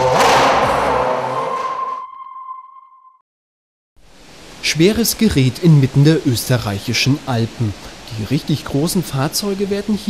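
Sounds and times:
electronic whoosh: 0.0 - 2.5
high ping tone: 1.1 - 3.2.

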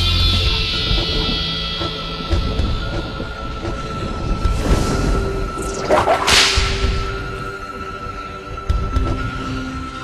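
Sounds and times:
film score held tone: 0.0 - 10.0
swishing whoosh: 4.6 - 7.2.

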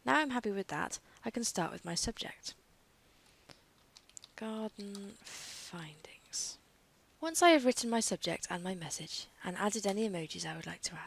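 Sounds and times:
woman whispering: 1.2 - 2.6, 4.4 - 6.6, 8.2 - 11.0.

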